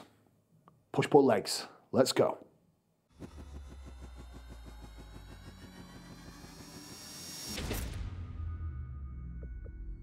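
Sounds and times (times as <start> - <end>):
engine-like pulsing: 3.1 - 8.6
low hum: 3.1 - 10.0
rising tone: 3.1 - 10.0.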